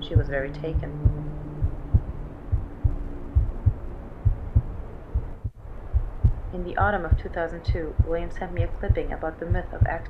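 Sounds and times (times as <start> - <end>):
heartbeat thuds: 0.0 - 10.0
low steady hum: 0.0 - 10.0.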